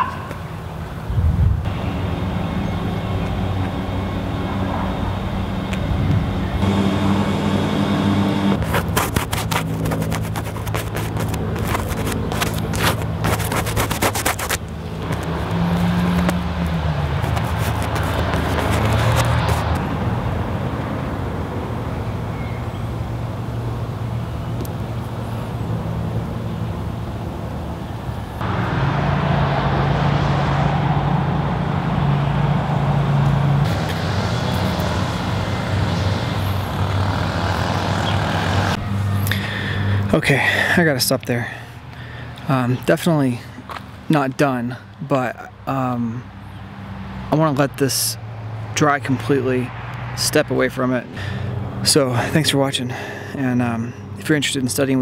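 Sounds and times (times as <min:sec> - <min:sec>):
vehicle engine running: 0:01.7 - 0:21.9, 0:23.0 - 0:40.7.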